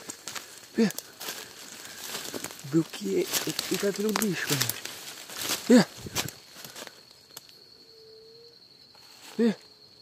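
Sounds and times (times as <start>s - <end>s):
footsteps through dry leaves: 0.0s - 7.0s
twigs snapping: 0.0s - 7.6s
high-pitched insect drone: 0.0s - 10.0s.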